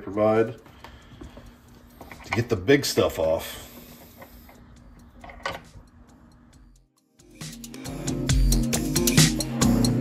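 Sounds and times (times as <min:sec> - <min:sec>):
background music: 0:04.7 - 0:10.0.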